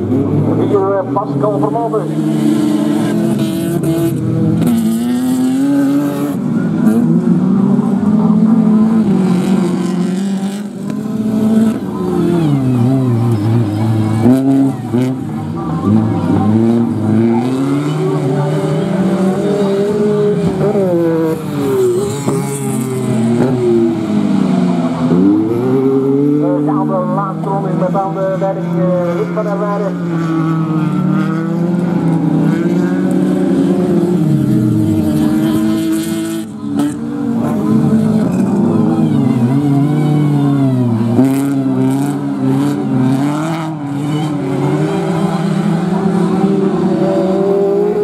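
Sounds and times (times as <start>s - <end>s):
racing car engine revving: 0.0s - 48.0s.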